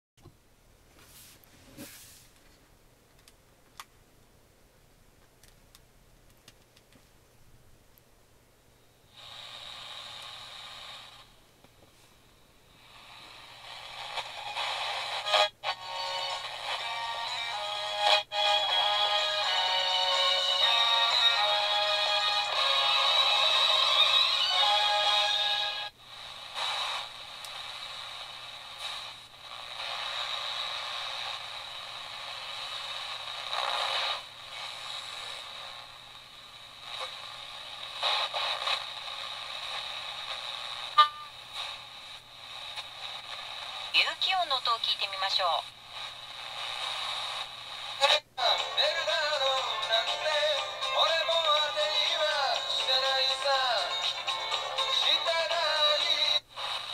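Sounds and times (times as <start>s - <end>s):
music from small radio speaker: 9.1s - 11.3s, 12.7s - 56.9s
broken-up radio static: 26.0s - 56.9s.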